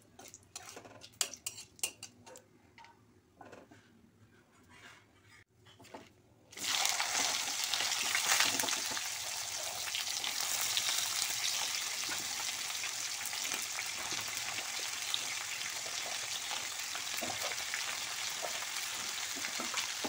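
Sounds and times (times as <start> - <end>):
metal spatula stirring in wok: 0.2 - 2.1
vegetables sizzling in oil: 6.6 - 20.0.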